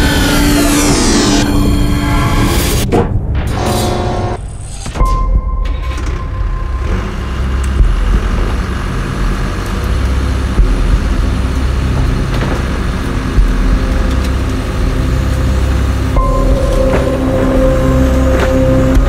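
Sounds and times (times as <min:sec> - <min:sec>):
heavy engine rumble: 0:00.0 - 0:19.0.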